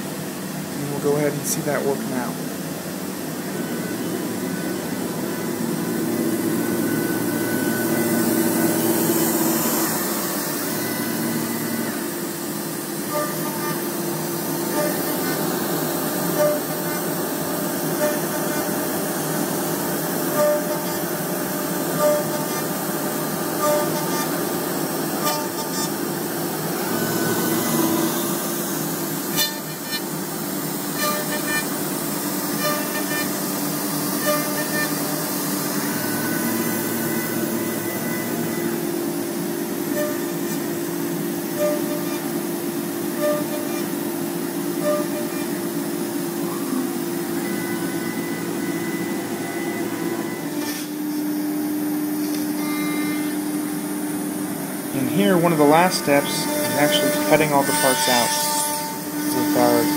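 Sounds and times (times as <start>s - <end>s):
dust extraction running: 0.0s - 59.9s
router spindle cutting wood: 3.4s - 51.0s, 54.8s - 59.9s.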